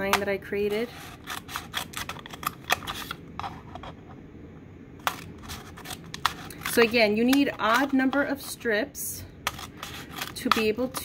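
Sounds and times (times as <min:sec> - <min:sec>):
scissors snipping paper cup: 0:09.5 - 0:11.0.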